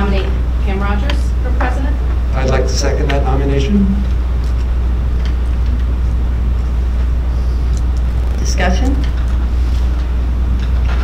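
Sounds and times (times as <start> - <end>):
low microphone hum: 0.0 - 10.6.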